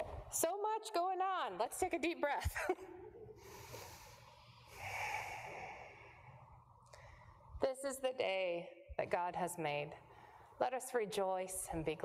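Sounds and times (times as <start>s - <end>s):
person exhaling deeply: 3.4s - 7.4s.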